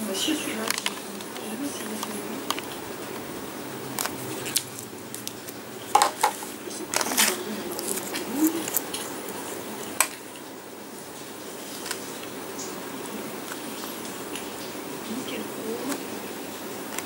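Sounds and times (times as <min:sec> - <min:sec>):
steady background noise: 0:00.0 - 0:17.0.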